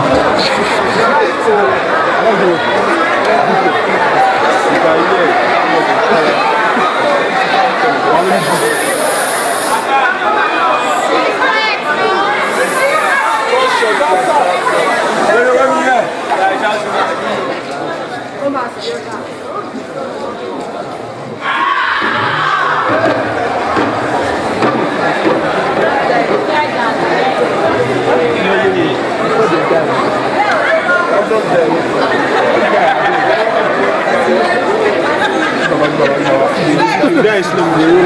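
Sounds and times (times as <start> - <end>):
crowd shouting and talking: 0.0 - 38.0
short hiss: 8.2 - 9.9, 12.4 - 15.2.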